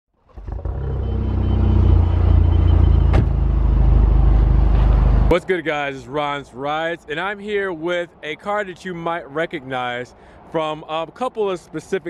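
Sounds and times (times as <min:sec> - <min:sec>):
car engine rumbling: 0:00.3 - 0:05.4.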